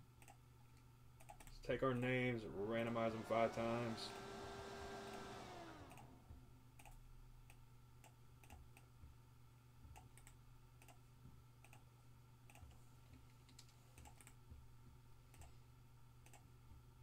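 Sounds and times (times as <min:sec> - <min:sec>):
faint low hum: 0:00.0 - 0:17.0
computer mouse clicks: 0:00.2 - 0:01.6, 0:05.9 - 0:06.1, 0:06.8 - 0:08.9, 0:09.9 - 0:11.0, 0:11.6 - 0:11.9, 0:12.5 - 0:14.4, 0:15.3 - 0:15.6, 0:16.2 - 0:16.5.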